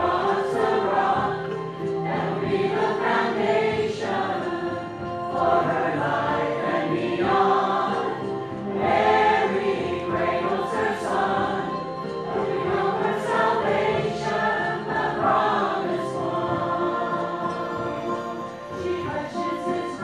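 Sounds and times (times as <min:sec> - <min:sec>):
mixed church choir singing: 0:00.0 - 0:20.0.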